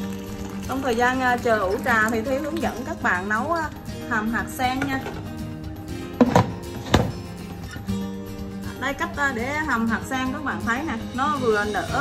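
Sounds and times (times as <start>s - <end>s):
background music: 0.0s - 12.0s
plastic lid knocking on pot: 6.2s - 7.2s.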